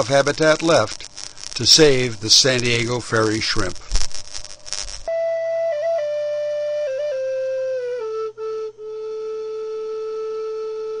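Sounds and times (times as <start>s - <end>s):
flute-like long note: 5.1s - 11.0s.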